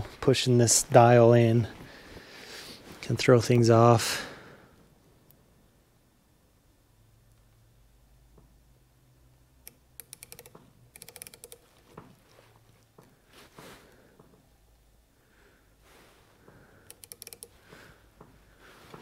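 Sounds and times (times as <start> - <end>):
micrometer ratchet clicking: 9.6 - 12.1, 16.8 - 17.6
gloved hands handling: 11.5 - 14.6.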